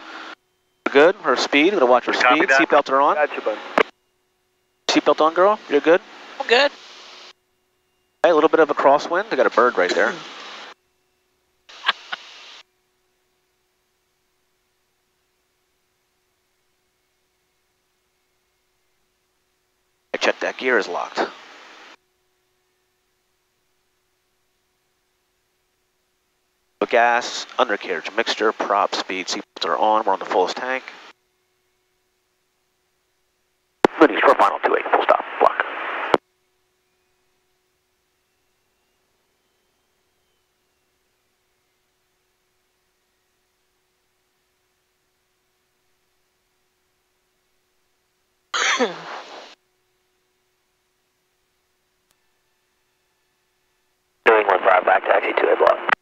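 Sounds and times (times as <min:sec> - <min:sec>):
faint steady hum: 0:00.0 - 0:56.0
radio voice: 0:00.9 - 0:03.9, 0:04.9 - 0:06.7, 0:08.2 - 0:10.3, 0:11.7 - 0:12.2, 0:33.9 - 0:36.2, 0:54.3 - 0:56.0
radio transmission click: 0:11.7 - 0:12.3
intercom squelch hiss: 0:11.7 - 0:12.6, 0:48.8 - 0:49.6, 0:54.3 - 0:56.0.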